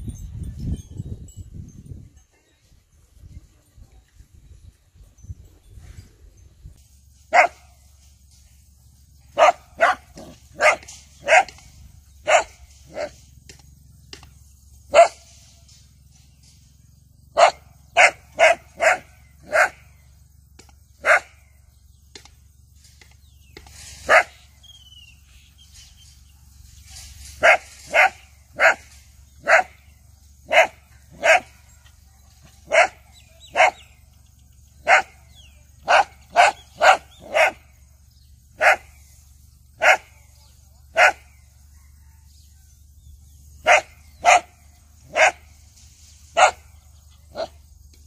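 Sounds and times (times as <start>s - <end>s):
dog barking: 7.3s - 7.6s, 9.4s - 13.2s, 14.9s - 15.3s, 17.3s - 19.9s, 21.0s - 21.4s, 24.1s - 24.4s, 27.4s - 29.8s, 30.4s - 34.0s, 34.8s - 37.8s, 38.6s - 38.9s, 39.8s - 40.2s, 40.9s - 41.3s, 43.6s - 45.5s, 46.4s - 46.7s, 47.3s - 47.6s.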